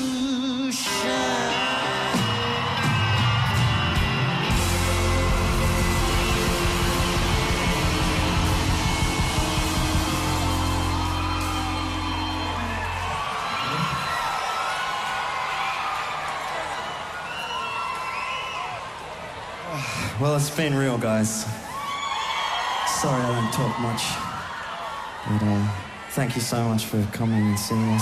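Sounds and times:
live rock band playing: 0.9s - 13.1s
crowd cheering and whooping: 1.1s - 20.2s, 21.6s - 28.0s.

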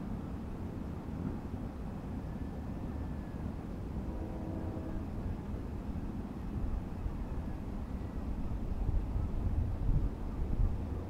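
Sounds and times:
wind rumbling on microphone: 6.4s - 11.0s.

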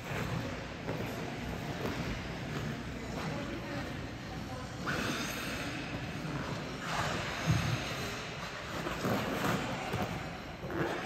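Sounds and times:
indoor rink noise: 0.0s - 11.0s
skate blades scraping on ice: 6.2s - 11.0s.

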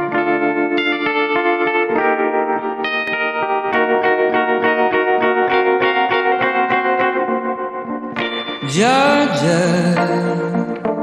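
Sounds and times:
electric guitar arpeggio: 0.0s - 11.0s.

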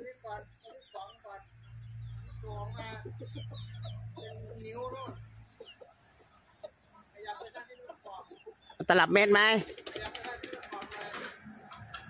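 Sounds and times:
chickens clucking: 0.0s - 12.0s
small birds chirping: 0.0s - 12.0s.

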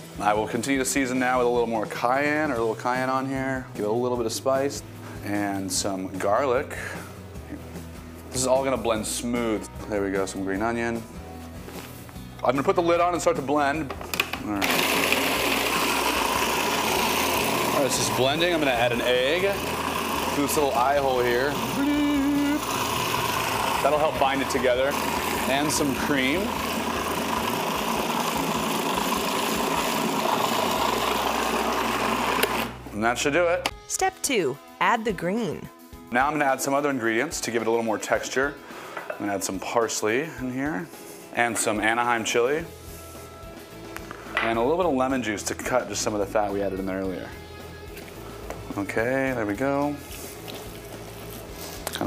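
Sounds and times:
quiet background music: 0.0s - 52.0s
blender motor whirring: 14.4s - 32.8s.

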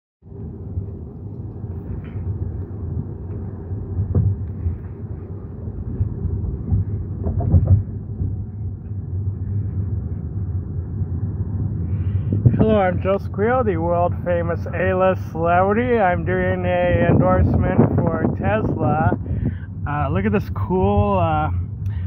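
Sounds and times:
road and tyre rumble in car: 0.2s - 22.0s
short knocks: 6.4s - 8.4s.

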